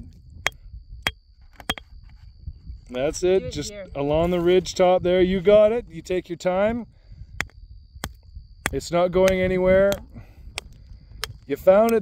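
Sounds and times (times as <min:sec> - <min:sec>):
rock hammer striking stone: 0:07.4 - 0:11.4.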